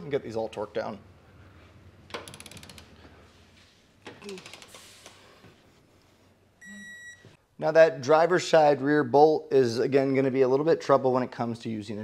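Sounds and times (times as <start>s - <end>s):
ratcheting torque wrench clicking: 2.1s - 2.9s.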